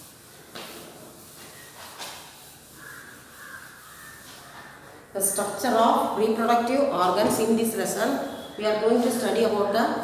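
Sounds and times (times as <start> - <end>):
duster wiping blackboard: 0.0 - 6.4.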